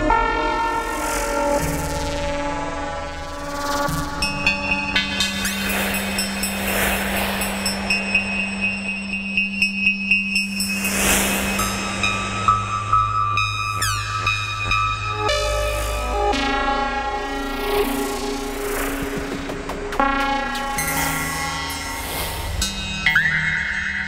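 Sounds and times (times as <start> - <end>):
low synthesizer drone: 0.0 - 23.1
quick pulsing synth rhythm: 18.5 - 20.8.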